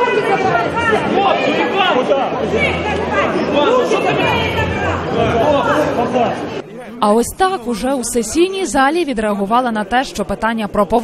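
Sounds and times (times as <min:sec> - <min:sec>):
crowd of men talking loudly: 0:00.0 - 0:11.0.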